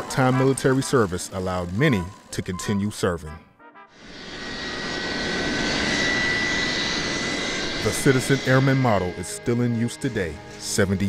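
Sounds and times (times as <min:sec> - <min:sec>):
jet engines whining: 0:00.0 - 0:03.4, 0:04.0 - 0:11.0.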